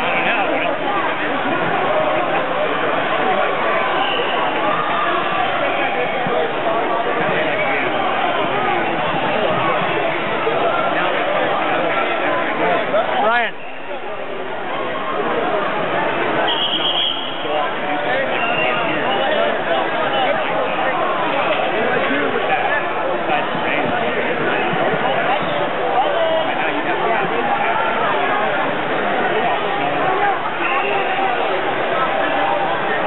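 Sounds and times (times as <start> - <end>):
crowd chatter in a gym: 0.0 - 33.0.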